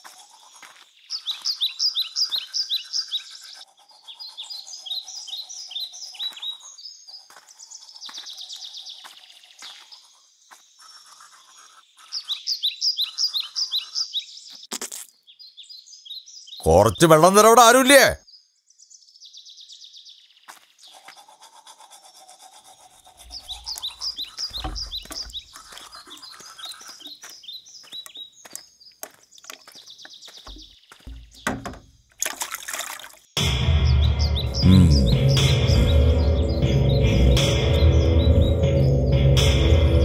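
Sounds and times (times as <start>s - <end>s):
birds chirping: 15.4s - 18.5s, 23.3s - 32.1s
film score music with heavy bass: 33.4s - 40.0s.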